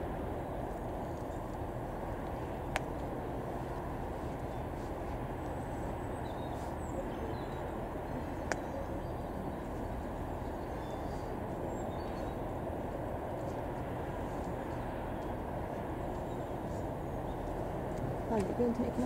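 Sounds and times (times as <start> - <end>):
distant train rumble: 0.0 - 19.0.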